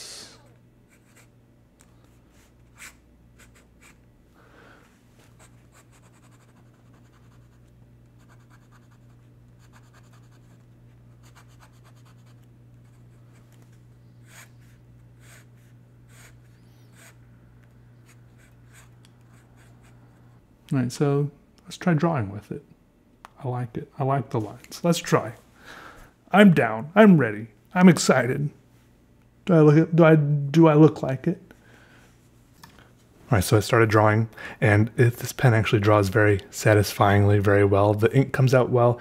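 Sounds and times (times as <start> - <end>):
steady low hum: 0.0 - 39.0
pen nib scratching on paper: 5.4 - 13.2, 14.2 - 17.2, 18.0 - 20.2.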